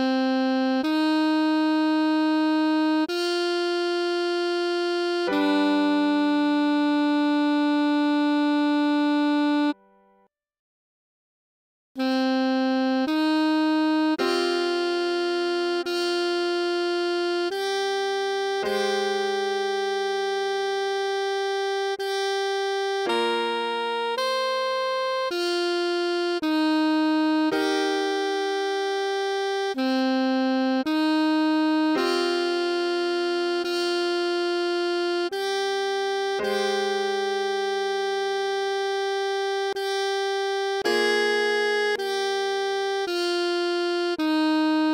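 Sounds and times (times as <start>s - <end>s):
alto saxophone steady note: 12.0s - 44.9s.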